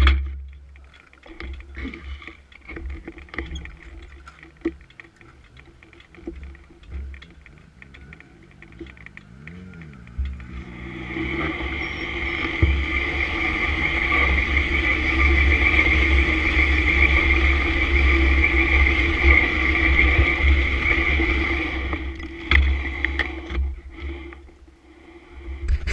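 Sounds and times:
motorcycle engine drone: 0.0s - 25.9s
wind rumble on microphone: 2.6s - 25.9s.

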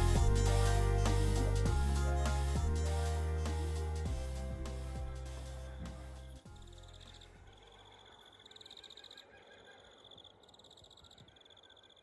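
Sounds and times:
background music: 0.0s - 8.1s.

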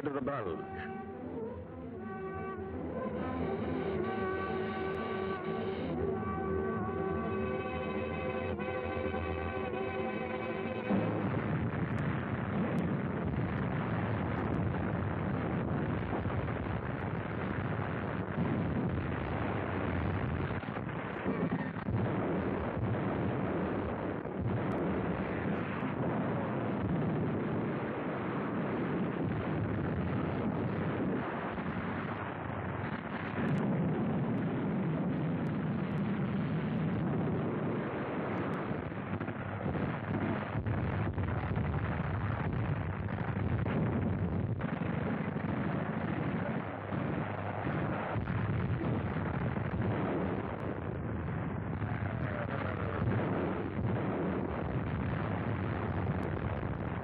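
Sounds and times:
rumble of shellfire and explosions: 0.0s - 57.0s.

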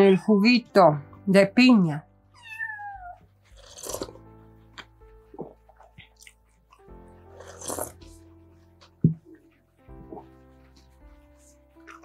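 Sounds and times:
soft background music: 0.0s - 12.0s
slurping sips from a mug: 3.5s - 4.2s, 7.3s - 8.2s.

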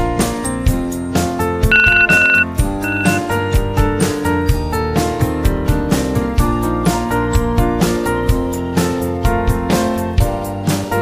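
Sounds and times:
alarm clock beeping: 1.7s - 3.2s.

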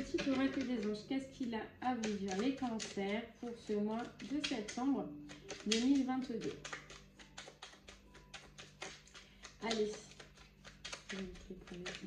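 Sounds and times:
cards being shuffled: 0.0s - 1.0s, 2.0s - 3.1s, 3.9s - 12.0s.

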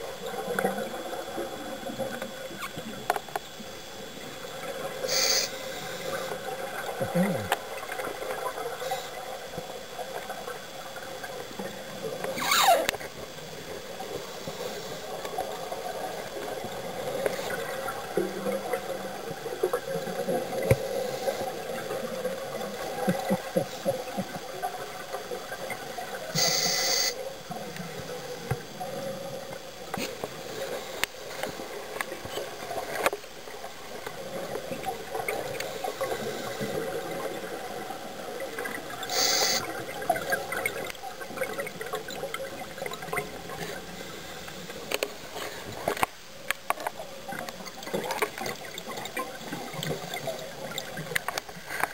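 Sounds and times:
underwater bubbling and gurgling: 0.0s - 51.9s.

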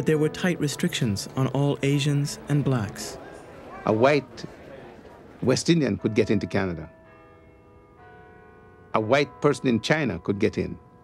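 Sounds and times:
faint bell-like music: 0.0s - 3.2s, 5.4s - 11.0s.

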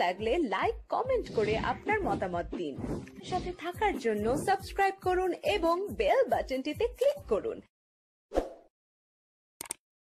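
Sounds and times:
mouse double click: 9.6s - 9.8s.

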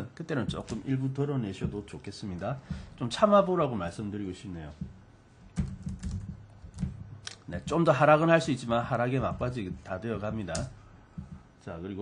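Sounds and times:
computer keyboard typing: 5.5s - 7.4s.

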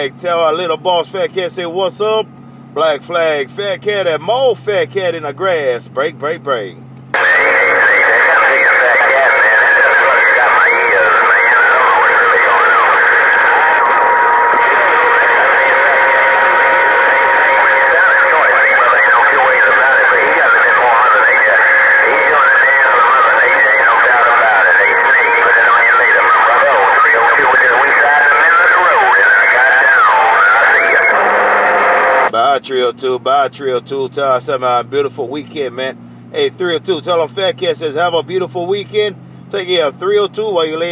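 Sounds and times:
garbled radio voices: 2.8s - 40.9s.

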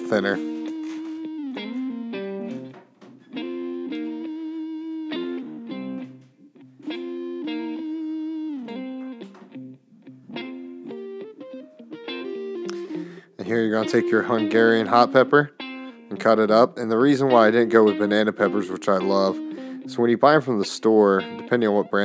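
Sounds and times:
guitar melody: 0.0s - 22.0s.

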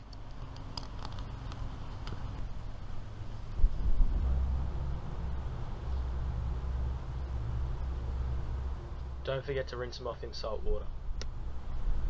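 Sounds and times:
low rumble: 1.4s - 12.0s.

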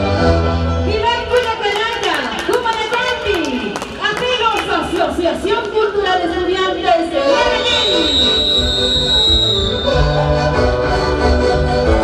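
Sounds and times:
live folk music: 0.0s - 1.6s, 6.9s - 12.0s.

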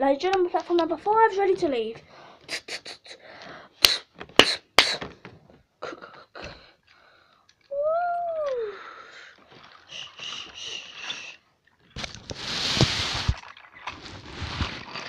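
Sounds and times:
toy trains clicking on plastic track: 9.9s - 11.4s.

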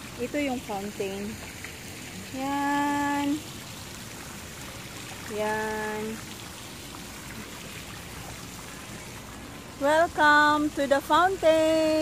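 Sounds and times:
fountain water splashing: 0.0s - 12.0s.

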